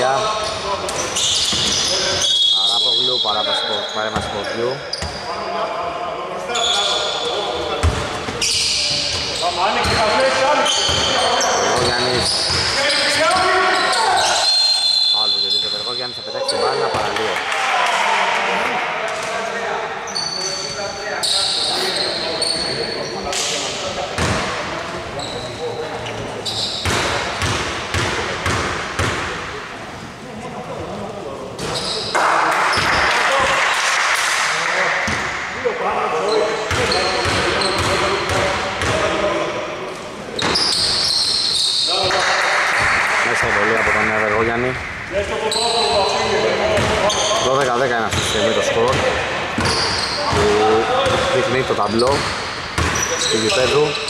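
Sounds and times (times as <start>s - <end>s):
sneaker squeaks: 0.0s - 5.8s, 6.5s - 17.2s, 20.1s - 28.0s, 31.6s - 33.1s, 36.2s - 39.0s, 40.4s - 42.2s, 45.4s - 54.0s
players' voices: 0.0s - 54.0s.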